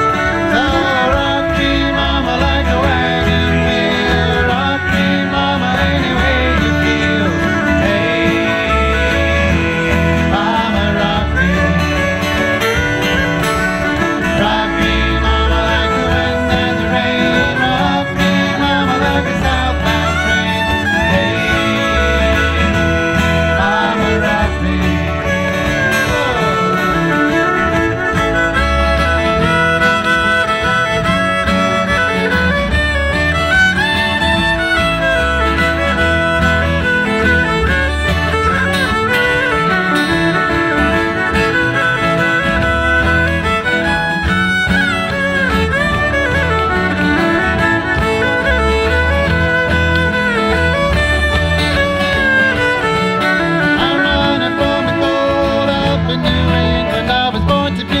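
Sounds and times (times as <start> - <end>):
acoustic folk band playing: 0.0 - 58.0
banjo: 0.0 - 58.0
bowed fiddle: 0.0 - 58.0
frame drum: 0.0 - 58.0.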